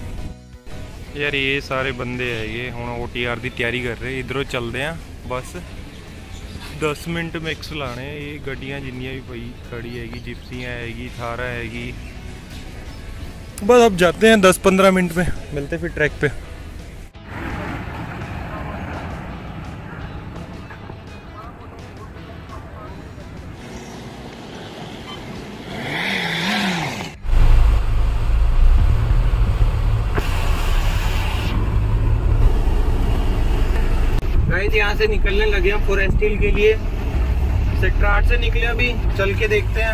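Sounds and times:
traffic noise: 0.0s - 39.9s
vehicle driving rumble: 16.5s - 39.9s.

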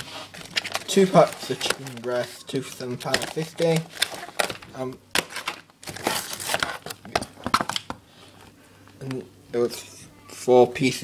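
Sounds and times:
plastic trays crinkling and clicking: 0.3s - 9.2s.

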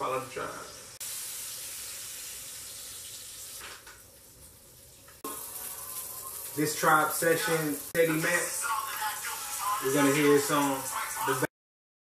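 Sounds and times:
sausages sizzling in a frying pan: 0.0s - 11.5s.

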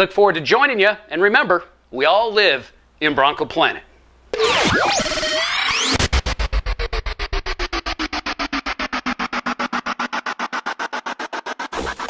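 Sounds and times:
electronic music stuttering pulse: 4.3s - 12.0s
slowly falling tone: 4.4s - 11.0s.

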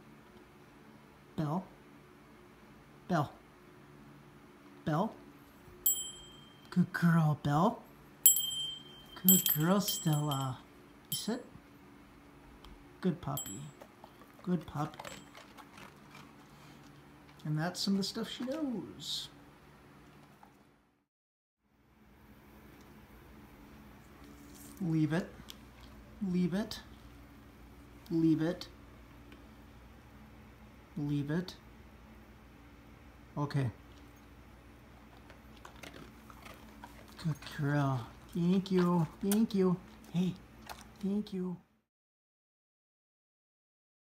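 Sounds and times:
faint bell ring: 5.8s - 6.9s, 8.2s - 11.4s, 13.4s - 13.8s
dog chewing a treat: 13.7s - 18.7s, 33.8s - 41.1s.

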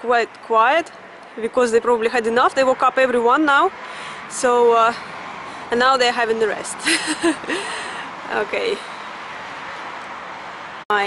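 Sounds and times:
distant road traffic hiss: 0.0s - 10.8s.

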